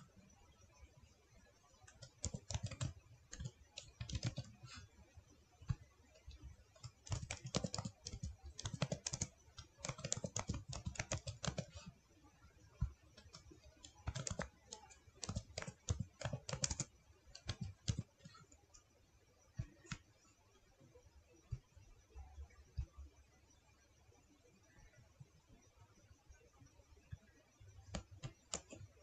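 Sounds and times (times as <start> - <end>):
computer keyboard typing: 1.8 - 4.8, 5.6 - 12.0, 12.8 - 18.9, 19.5 - 20.1, 27.9 - 29.0.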